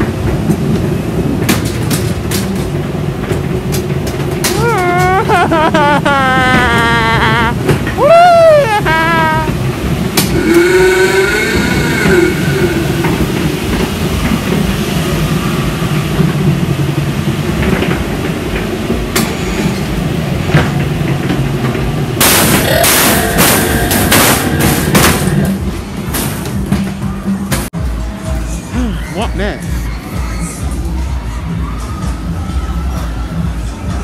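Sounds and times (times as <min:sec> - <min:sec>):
ride train rumbling on track: 0:00.0 - 0:34.0.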